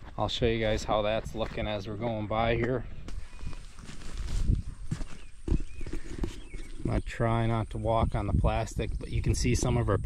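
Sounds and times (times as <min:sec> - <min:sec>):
footsteps walking: 0:00.0 - 0:06.8.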